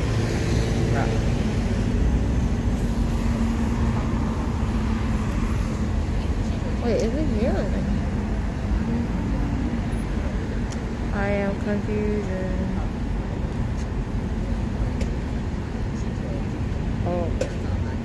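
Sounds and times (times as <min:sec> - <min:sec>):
rumble of cars: 0:00.0 - 0:18.0
steady engine hum: 0:00.0 - 0:18.0.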